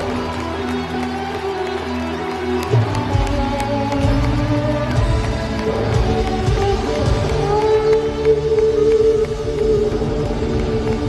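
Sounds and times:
electric guitar long bending note: 0.0s - 11.0s
drums and bass: 2.8s - 11.0s.

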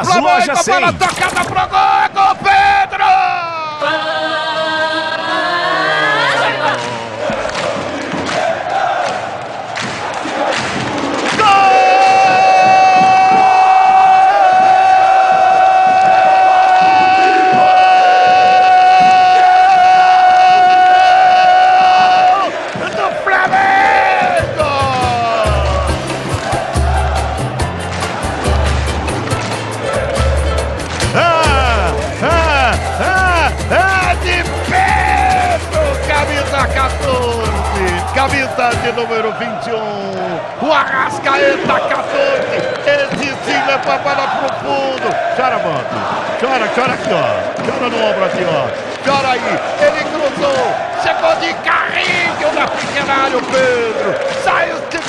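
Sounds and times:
shouting: 0.0s - 9.3s, 11.2s - 27.5s, 31.1s - 55.0s
crowd noise: 0.0s - 55.0s
narrator's long held goal cry: 11.3s - 26.0s
music with pulsing bass: 24.5s - 38.6s.

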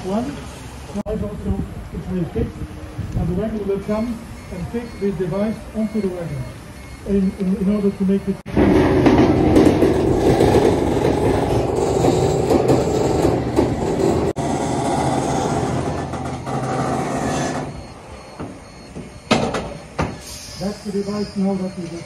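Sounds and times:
mechanical rumble and grinding: 8.5s - 19.7s.

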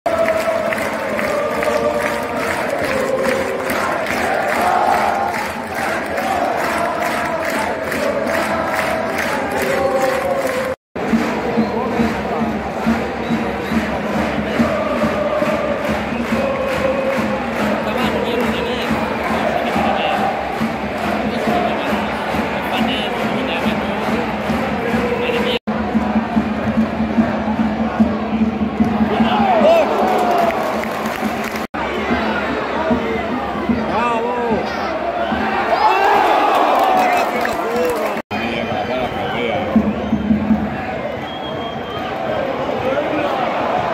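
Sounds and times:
football crowd chanting and singing: 0.1s - 43.9s.

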